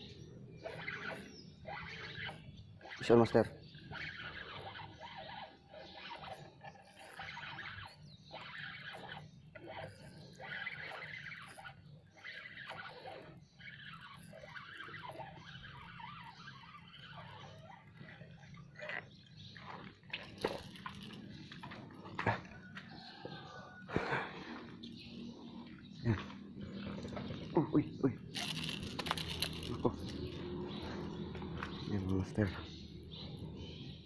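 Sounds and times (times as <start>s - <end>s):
fishing reel whirring: 0.0s - 22.0s, 28.2s - 32.1s.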